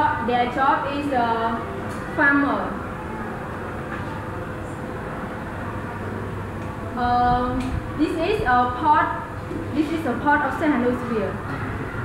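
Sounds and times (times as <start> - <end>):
room hum and hiss: 0.0 - 12.0.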